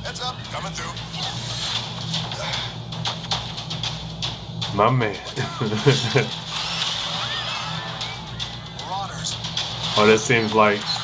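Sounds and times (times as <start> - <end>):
action sound effects: 5.8 - 11.0.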